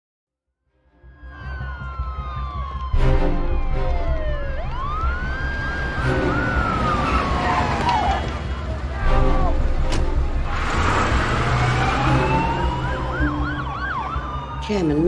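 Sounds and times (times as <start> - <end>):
film score with pulsing beat: 0.9 - 6.7
police siren wailing: 1.0 - 15.0.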